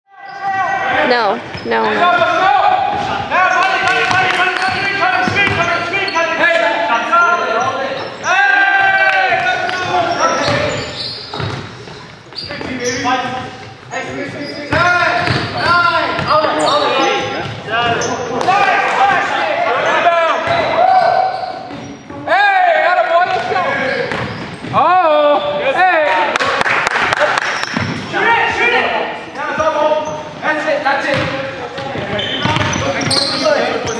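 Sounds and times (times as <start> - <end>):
sneakers squeaking: 0.2 - 22.3, 23.2 - 25.6, 27.5 - 28.1, 29.3 - 30.4, 31.0 - 33.9
basketball bouncing: 8.8 - 13.4, 14.7 - 16.3, 31.1 - 33.1.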